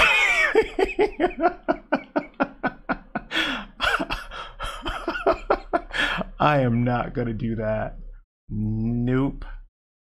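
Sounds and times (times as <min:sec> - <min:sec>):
man laughing: 0:00.0 - 0:06.4.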